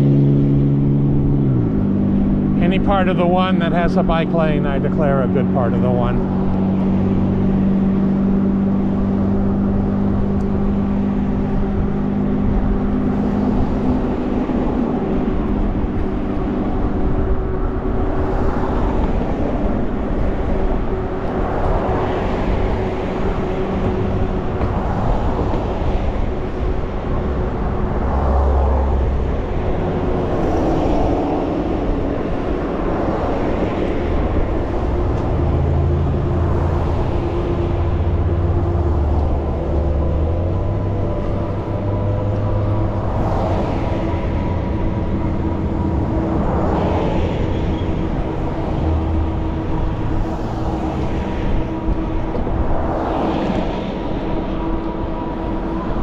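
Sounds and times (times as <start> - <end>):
road traffic passing: 0.0 - 56.0
wind rush: 6.0 - 56.0.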